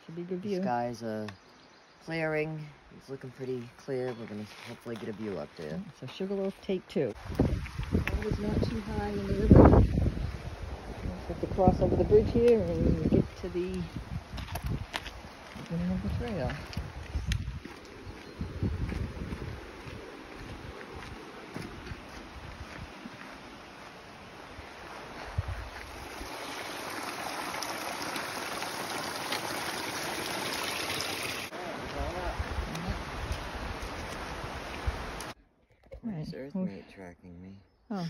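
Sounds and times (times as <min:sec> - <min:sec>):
river water rushing: 0:22.9 - 0:35.4.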